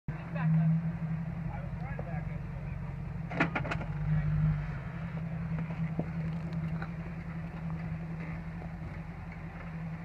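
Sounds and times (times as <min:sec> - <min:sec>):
car engine running: 0:00.1 - 0:10.0.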